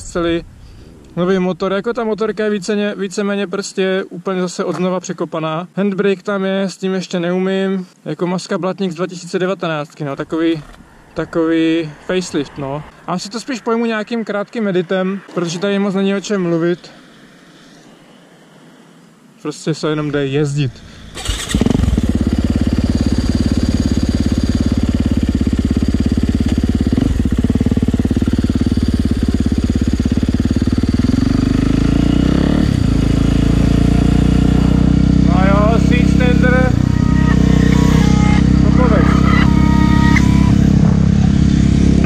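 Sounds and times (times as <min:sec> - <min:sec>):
motorcycle engine running: 0:20.8 - 0:42.0.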